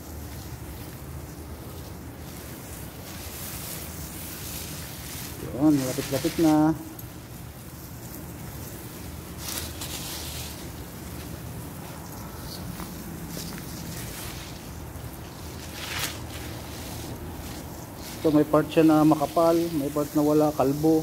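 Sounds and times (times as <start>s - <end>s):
garden hose spray hissing: 0.0s - 21.0s.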